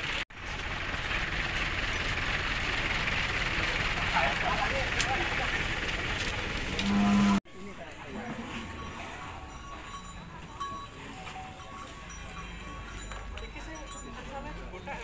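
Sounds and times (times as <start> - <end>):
crowd hubbub: 2.8 - 15.0
cow mooing: 6.7 - 7.4.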